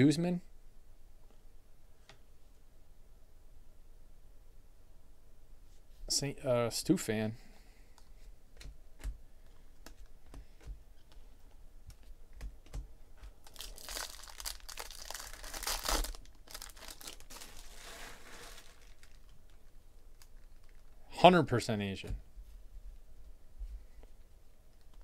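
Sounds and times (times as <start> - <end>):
soft rustle: 5.6 - 6.2, 13.7 - 21.0
card pack wrapper tearing: 13.5 - 19.4.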